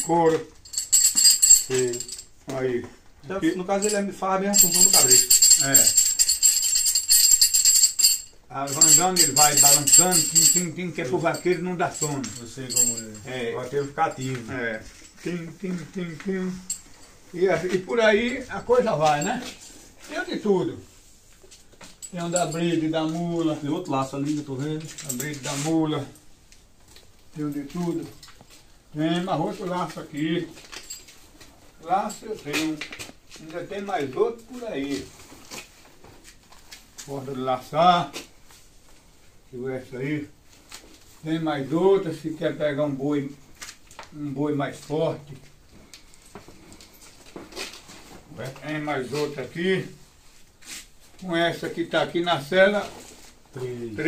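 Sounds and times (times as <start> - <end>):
small metal bells jingling: 0.0 - 2.5, 3.2 - 26.3, 27.3 - 35.1
rope rustling: 0.3 - 37.3, 43.4 - 51.3.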